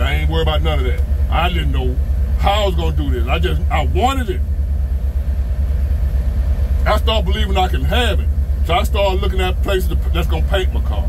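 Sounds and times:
man's voice: 0.0 - 4.4
car engine idling: 0.0 - 11.0.

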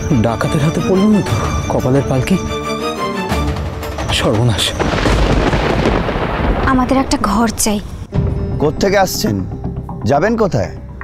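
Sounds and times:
rumbling thunder crash: 4.2 - 8.1.

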